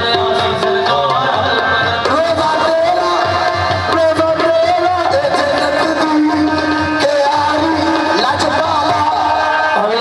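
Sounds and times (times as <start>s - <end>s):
harmonium chords: 0.0s - 10.0s
male voices singing: 0.0s - 10.0s.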